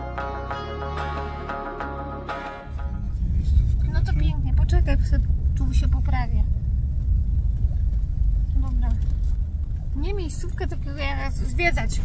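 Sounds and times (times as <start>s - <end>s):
vehicle rumble from inside cab: 2.7s - 12.0s.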